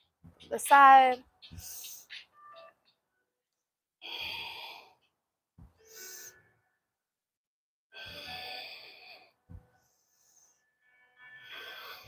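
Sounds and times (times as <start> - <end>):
woman breathing deeply: 4.0 - 5.2, 7.9 - 10.7.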